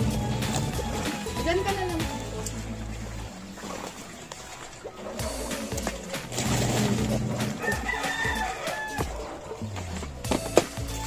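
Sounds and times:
rooster crowing: 7.5 - 9.3.

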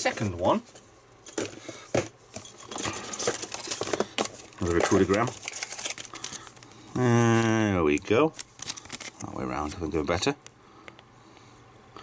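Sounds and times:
plastic packaging crinkling: 2.4 - 9.9.

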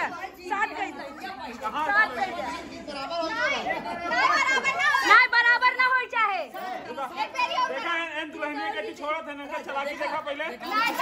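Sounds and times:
many voices talking over one another: 0.0 - 11.0.

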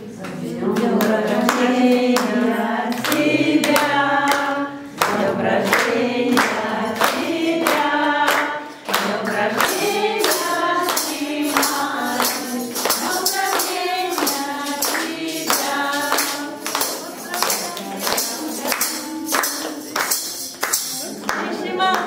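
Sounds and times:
group singing devotional song: 0.0 - 22.0
hands clapping in time: 0.2 - 22.0.

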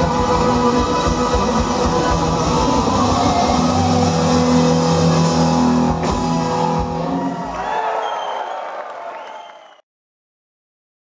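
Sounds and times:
blues-rock band playing: 0.0 - 7.6
drumming: 0.0 - 8.0.

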